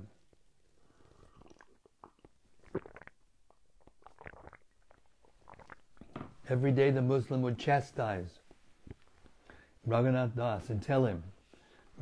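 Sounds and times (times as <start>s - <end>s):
man sipping and swallowing: 0.2s - 6.5s, 8.4s - 9.7s
soft mouth clicks: 1.1s - 6.2s, 8.5s - 9.6s.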